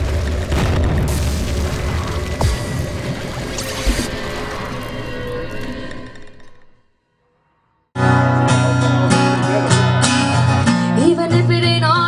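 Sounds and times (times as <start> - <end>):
deep bass drone: 0.0 - 6.8.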